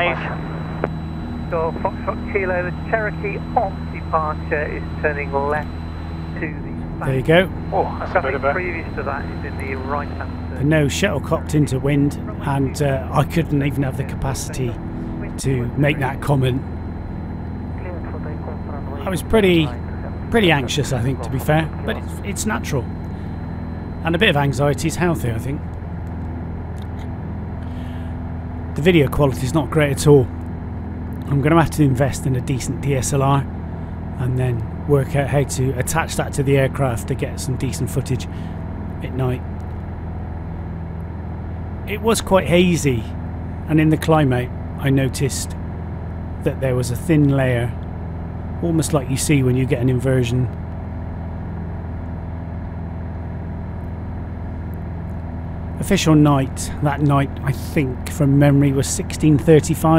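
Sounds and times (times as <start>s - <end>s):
propeller aircraft engine droning: 0.0s - 59.9s
person speaking: 6.4s - 16.7s, 17.8s - 23.0s, 55.8s - 59.9s.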